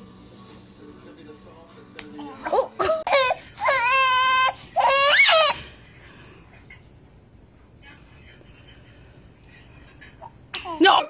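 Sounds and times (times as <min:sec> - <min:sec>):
baby crying: 0:02.4 - 0:05.6.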